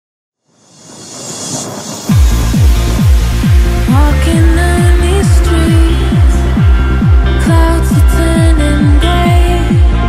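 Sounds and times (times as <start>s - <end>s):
rushing white-noise swell: 0.4s - 10.0s.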